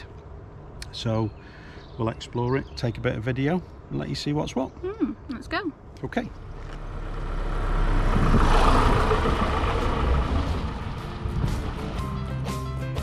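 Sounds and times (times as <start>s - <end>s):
motorhome driving past: 6.3s - 13.0s
plucked guitar music: 10.4s - 13.0s.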